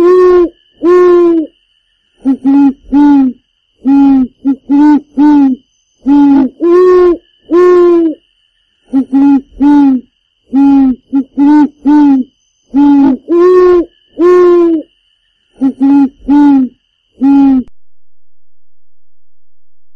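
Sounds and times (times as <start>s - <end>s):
short hollow hoots: 0.0s - 1.6s, 2.2s - 8.2s, 8.9s - 14.9s, 15.6s - 17.7s.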